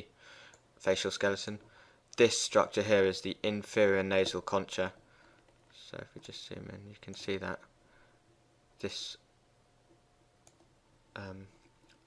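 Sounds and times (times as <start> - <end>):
computer mouse click: 10.4 - 10.7.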